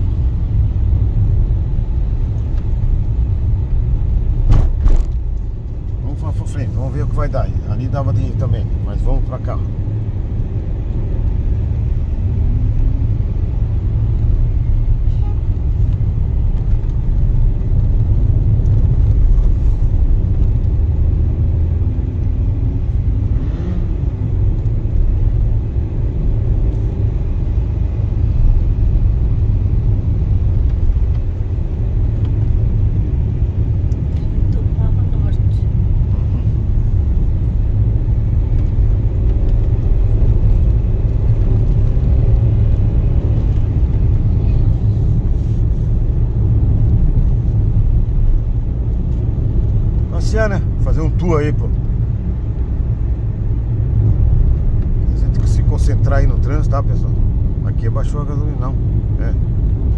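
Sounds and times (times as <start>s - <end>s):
car engine and tyres rumbling: 0.0s - 59.9s.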